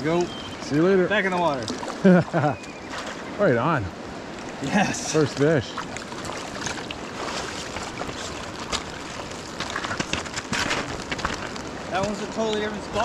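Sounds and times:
river water running over stones: 0.0 - 13.0.

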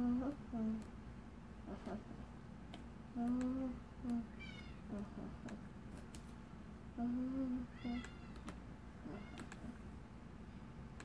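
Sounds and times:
young child humming: 0.0 - 0.9, 3.1 - 5.5, 7.0 - 8.2.

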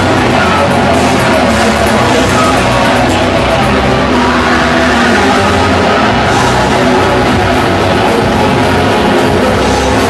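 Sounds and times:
live grindcore band playing: 0.0 - 10.0.

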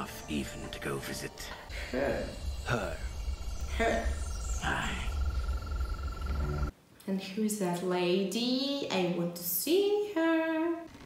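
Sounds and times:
frog trilling: 0.8 - 6.7
low rumble: 1.0 - 6.7.

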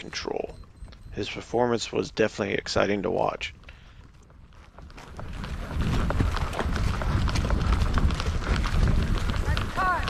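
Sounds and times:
horse hoofbeats on grassy ground: 2.8 - 10.0.

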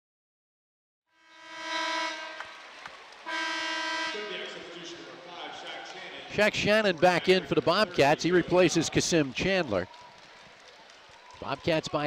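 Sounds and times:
arena horn blasts: 1.2 - 5.0
crowd noise: 1.8 - 12.0.

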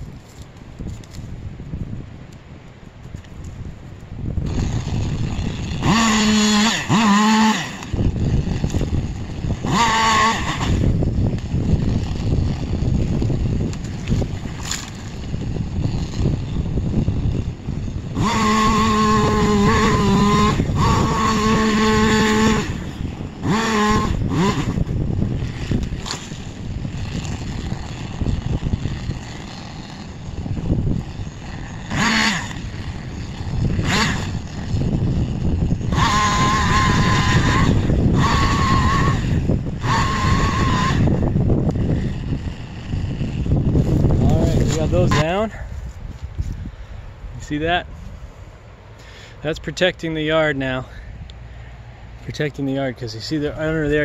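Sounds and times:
chainsaw motor whine cutting: 4.2 - 54.0.

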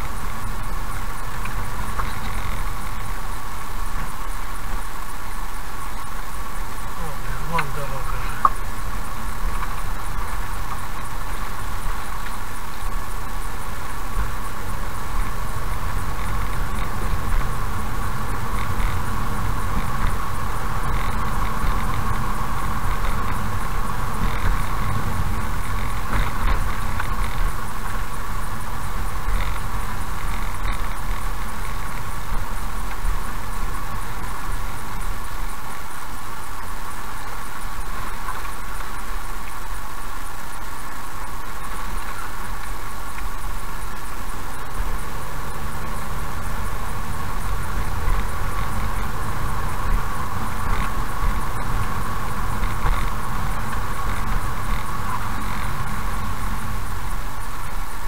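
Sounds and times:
car engine and tyre noise: 0.0 - 58.0
faint clicks: 0.0 - 58.0.

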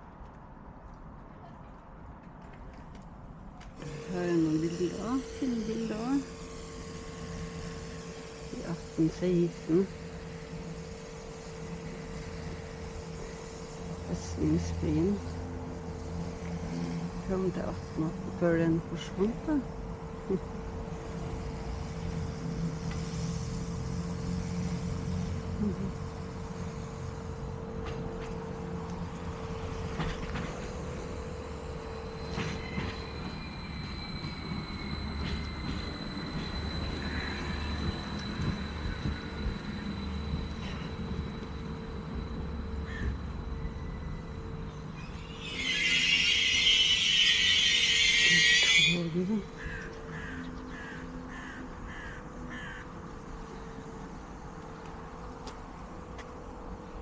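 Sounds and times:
faint continuous tone: 0.0 - 45.6
train rumble: 0.0 - 57.0
loud hiss: 3.8 - 27.5, 43.8 - 49.0
crow cawing: 42.9 - 43.2, 49.6 - 53.0.

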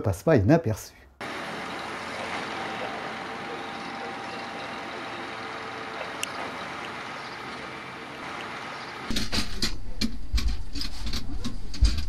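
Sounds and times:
railcar hum and hiss: 1.2 - 9.2
faint whine: 1.2 - 9.3.

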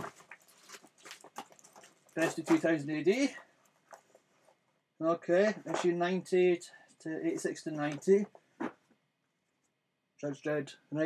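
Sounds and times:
paper comics rustling: 0.0 - 3.3.

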